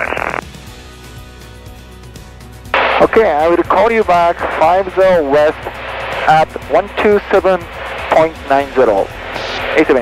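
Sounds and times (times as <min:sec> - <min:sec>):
piston engine drone: 0:02.8 - 0:10.0
radio voice through headset: 0:02.8 - 0:10.0.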